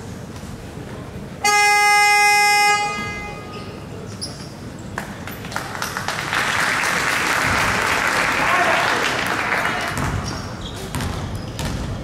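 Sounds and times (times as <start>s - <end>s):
gymnasium hum: 0.0s - 12.0s
scoreboard buzzer horn: 1.4s - 3.6s.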